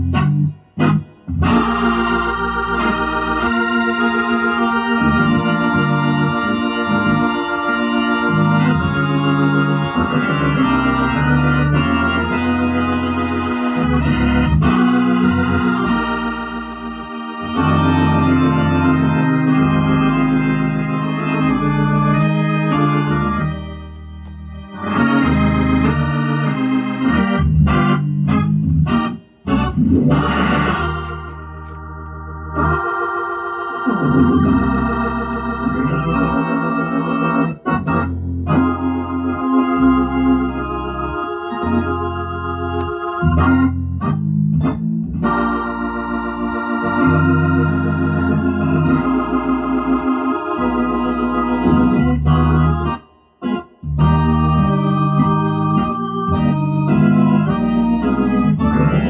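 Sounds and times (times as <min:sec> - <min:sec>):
organ playing gospel chords: 0:00.0 - 0:59.0.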